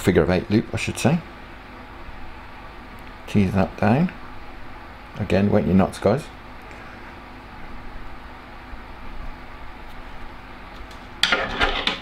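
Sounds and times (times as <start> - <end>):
loud clatter: 11.2 - 12.0.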